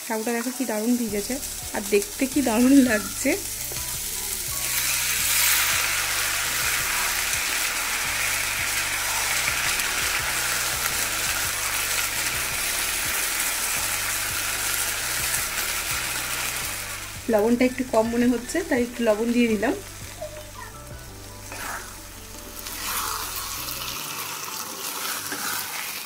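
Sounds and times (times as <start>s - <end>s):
food sizzling in a wok: 0.0s - 26.0s
wooden spatula scraping: 21.5s - 22.0s, 22.6s - 24.0s, 24.8s - 26.0s.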